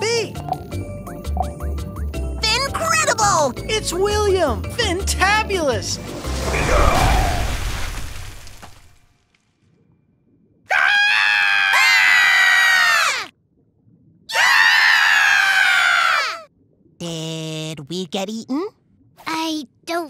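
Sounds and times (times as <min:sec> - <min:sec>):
cartoon screams: 0:10.7 - 0:13.3, 0:14.3 - 0:16.5.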